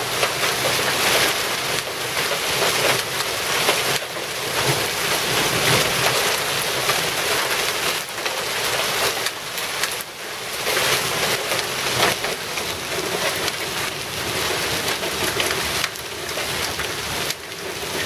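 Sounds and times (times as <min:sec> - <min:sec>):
hail and heavy rain on concrete: 0:00.0 - 0:18.0.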